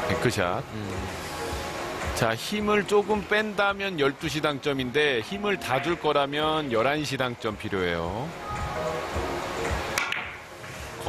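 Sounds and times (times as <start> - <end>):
cue tip striking cue ball: 9.9 - 10.4
billiard balls knocking together: 10.0 - 10.4.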